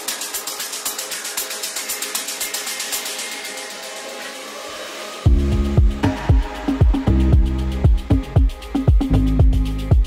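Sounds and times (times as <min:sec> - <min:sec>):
hiss-like noise wash: 0:00.0 - 0:08.8.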